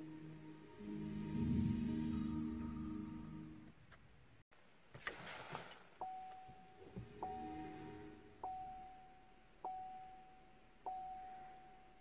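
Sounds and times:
car electronic chime: 6.0 - 12.0
cluster of lower tones: 6.8 - 9.4.

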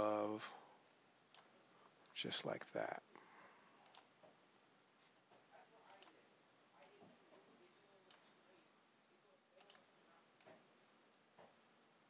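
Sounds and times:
computer mouse clicks: 3.8 - 4.1, 5.9 - 6.2, 9.6 - 9.8.

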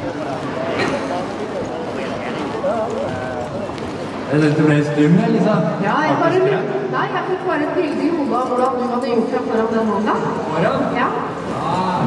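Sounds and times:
murmur of indoor crowd: 0.0 - 12.0.

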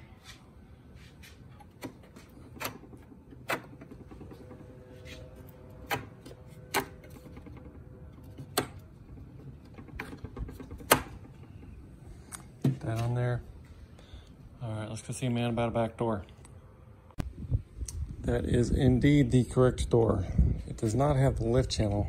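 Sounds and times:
metal hardware clicking on plywood: 5.7 - 11.8.

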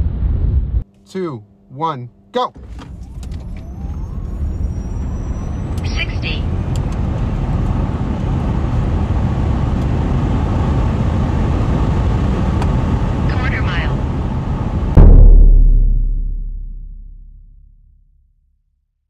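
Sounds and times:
car wind and road roar: 2.4 - 15.4.

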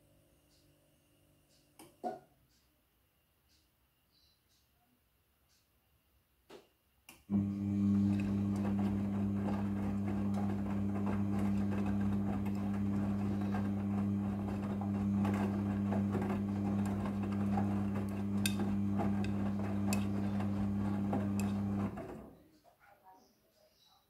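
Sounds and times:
clothes churning in drum: 7.3 - 22.3
washing machine motor hum: 7.3 - 22.4.

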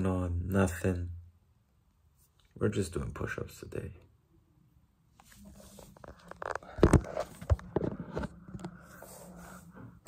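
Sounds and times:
phone handling knocks and scrapes: 5.8 - 9.0.

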